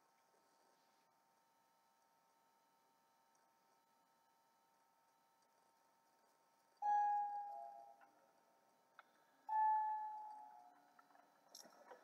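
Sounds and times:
chime ringing: 0:06.8 - 0:08.0.

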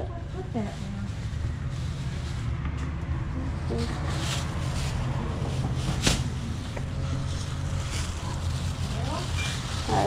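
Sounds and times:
plastic bag rustling: 0:00.0 - 0:02.6, 0:03.2 - 0:10.0.

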